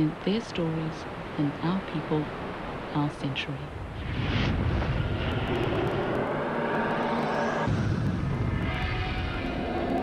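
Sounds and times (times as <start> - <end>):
rushing whoosh: 3.9 - 9.3.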